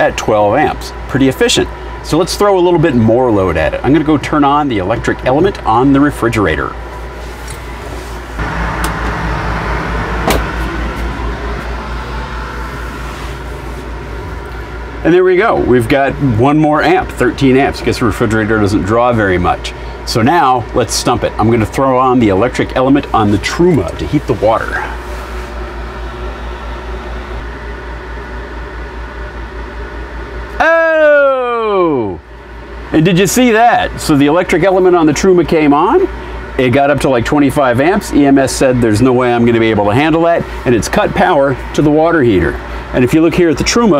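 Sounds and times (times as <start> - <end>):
air conditioner humming: 0.0 - 43.9
loud tone sliding down in pitch: 8.4 - 13.5.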